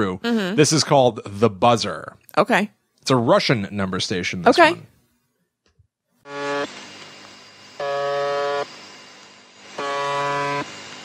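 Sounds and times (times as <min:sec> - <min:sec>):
harsh buzz tone: 0:06.2 - 0:11.0
radio static hiss: 0:06.3 - 0:11.0.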